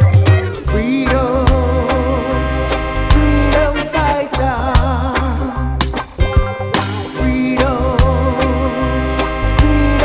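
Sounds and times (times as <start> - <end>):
reggae music: 0.0 - 10.0.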